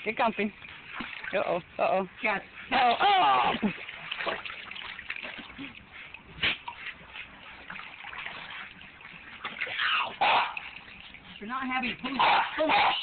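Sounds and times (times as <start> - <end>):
water sloshing and splashing: 0.0 - 13.0
sharp splash: 2.7 - 11.2.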